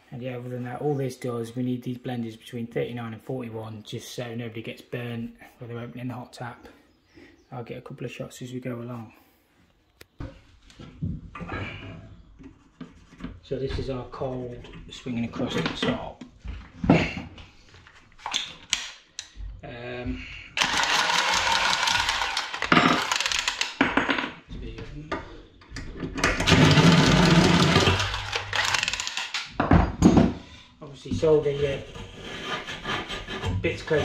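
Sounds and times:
pipe cutter scraping: 20.6 - 23.8, 26.3 - 29.6, 31.2 - 34.0.

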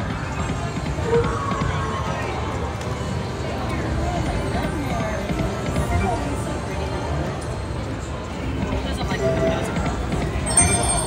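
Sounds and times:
slot machine music: 10.4 - 11.0.

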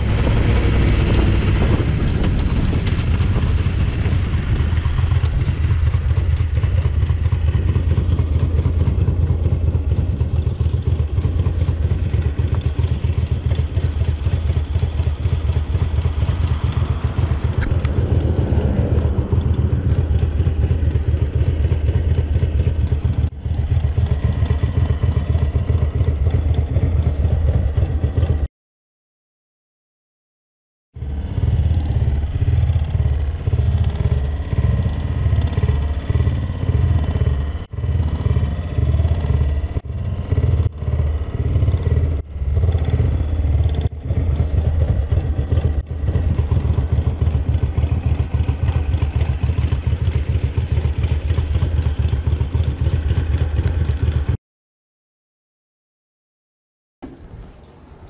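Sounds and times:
motorcycle engine idling: 0.0 - 28.4, 31.0 - 54.4.

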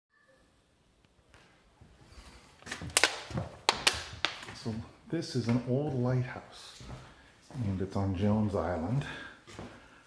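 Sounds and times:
footsteps on wooden floorboards: 1.3 - 9.9.

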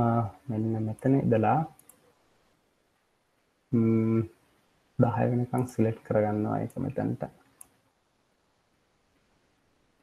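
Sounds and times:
man speaking: 0.0 - 1.8, 3.7 - 4.3, 5.0 - 7.3
faint computer mouse clicks: 1.8 - 2.1.

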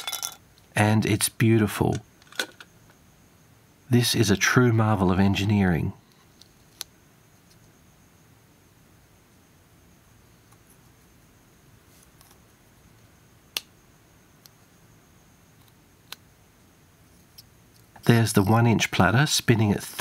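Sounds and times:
quiet handling of small devices: 1.8 - 3.0, 6.0 - 7.8, 10.3 - 11.1, 11.8 - 12.6.

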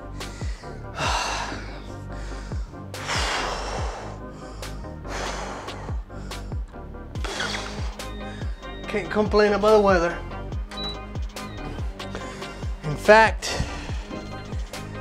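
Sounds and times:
man breathing hard: 0.0 - 8.8, 11.8 - 12.8, 13.4 - 15.0
background music with steady beat: 0.0 - 15.0.

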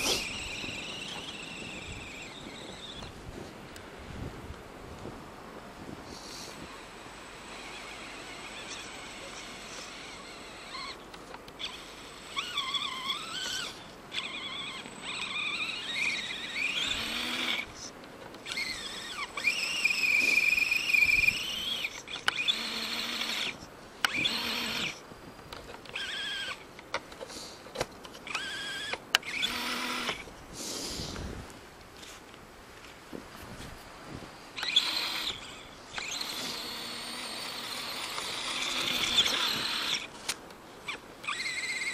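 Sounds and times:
electric motor whining: 0.0 - 3.5, 6.2 - 25.0, 25.8 - 26.7, 28.2 - 30.3, 34.5 - 41.9.

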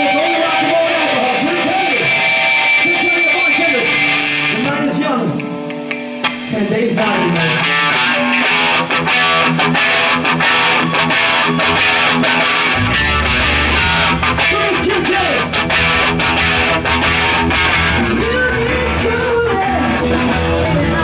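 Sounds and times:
electric guitar playing fast notes: 0.0 - 21.0
deep bass: 11.6 - 21.0.

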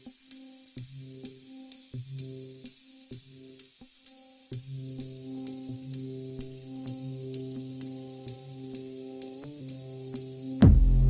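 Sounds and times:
synth note stabs: 10.6 - 11.0.

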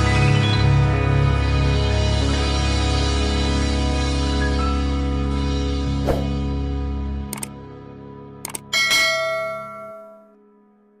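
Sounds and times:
short clicks: 7.3 - 7.5
bright bell ding: 8.8 - 10.4.

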